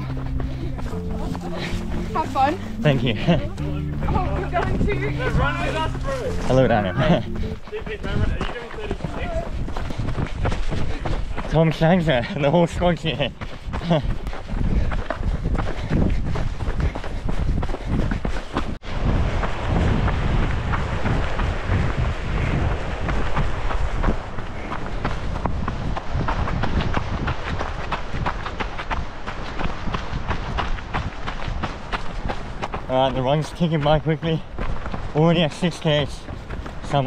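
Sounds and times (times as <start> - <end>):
running footsteps on dirt: 0.0 - 37.0
wind rumble on microphone: 3.2 - 11.6, 12.9 - 33.3.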